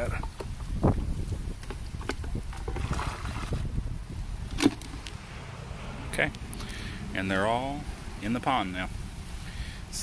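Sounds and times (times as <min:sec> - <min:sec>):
microphone handling noise: 0:00.0 - 0:05.3
wind rumble on microphone: 0:00.0 - 0:10.0
bucket tipped into pond: 0:02.0 - 0:03.8, 0:04.5 - 0:05.0.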